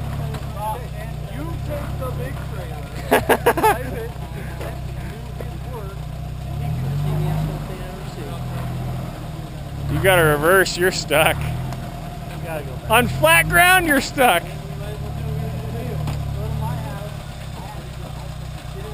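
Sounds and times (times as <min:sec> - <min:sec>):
car engine idling and revving: 0:00.0 - 0:18.9.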